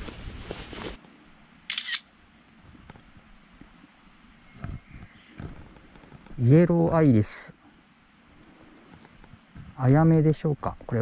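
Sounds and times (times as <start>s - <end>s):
camera shutter click: 1.7s - 2.1s.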